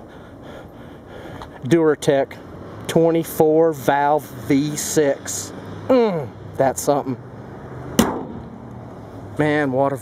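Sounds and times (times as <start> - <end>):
car hood slamming shut: 8.0 - 8.6.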